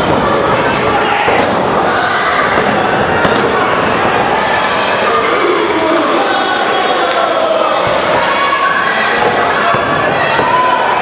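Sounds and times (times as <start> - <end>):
crowd shouting: 0.0 - 11.0
crowd clapping: 5.7 - 7.8.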